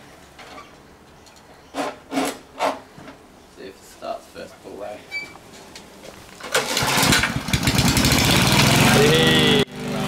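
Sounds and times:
lawn mower scraping rasp: 1.8s - 2.8s, 6.5s - 10.0s.

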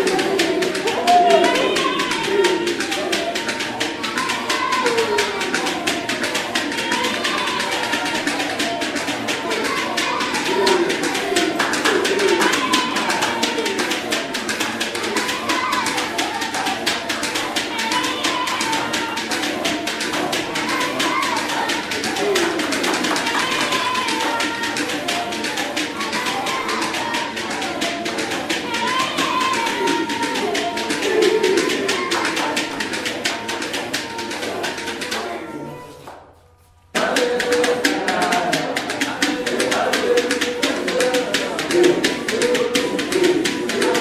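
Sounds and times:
people singing: 0.0s - 36.1s, 36.9s - 44.0s
hand claps: 0.0s - 44.0s.

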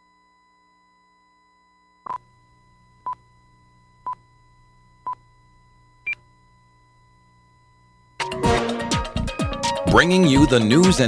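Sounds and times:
faint low hum: 0.0s - 8.2s.

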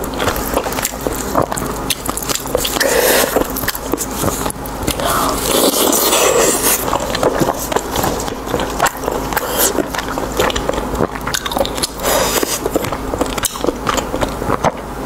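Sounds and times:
chewing crispy pork: 0.0s - 15.0s.

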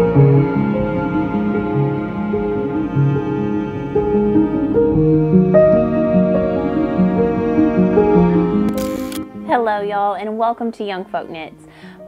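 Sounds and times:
soft intro music: 0.0s - 11.7s
camera shutter sound effect: 8.7s - 9.2s
woman speaking: 9.5s - 11.6s.

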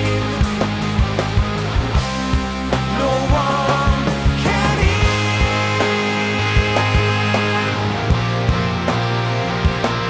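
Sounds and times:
bass guitar: 0.0s - 10.0s
distorted electric guitar: 0.0s - 10.0s
steady drum beat: 0.0s - 10.0s.

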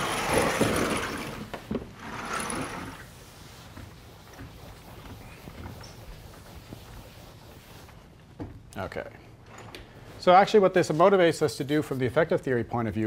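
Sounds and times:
sliding chalkboard panels rumbling: 0.0s - 7.9s.

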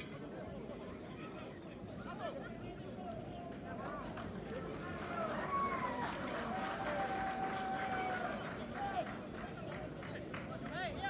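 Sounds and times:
voices shouting and calling out: 0.2s - 11.0s.

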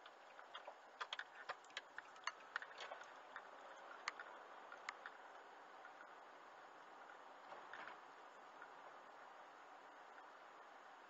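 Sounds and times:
light ticks: 0.0s - 6.2s
road noise inside a car: 0.0s - 11.0s.

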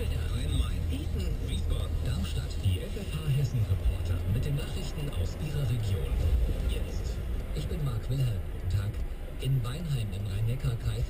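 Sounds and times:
car engine and road rumble: 0.0s - 11.0s
man talking on car radio: 0.0s - 11.0s
radio music: 0.0s - 11.0s.

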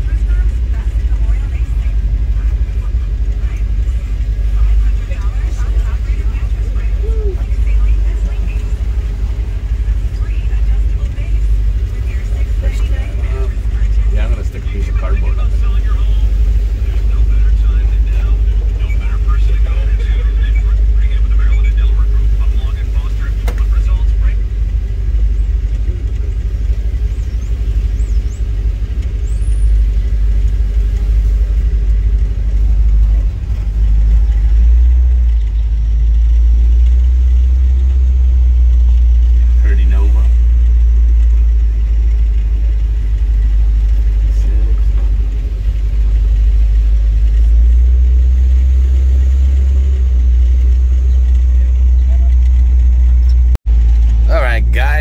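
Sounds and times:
truck engine low rumble: 0.0s - 55.0s.

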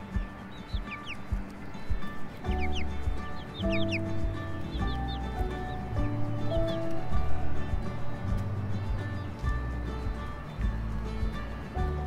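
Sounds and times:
background music with low beat: 0.0s - 12.0s
chicks giving high calls: 0.0s - 12.0s.

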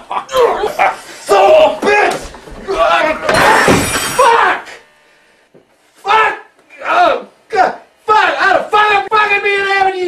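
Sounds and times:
person's loud wordless outbursts: 6.0s - 10.0s.

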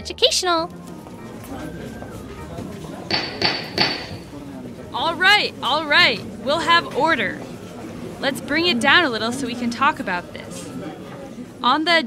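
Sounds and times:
gavel knocking: 3.1s - 4.3s.

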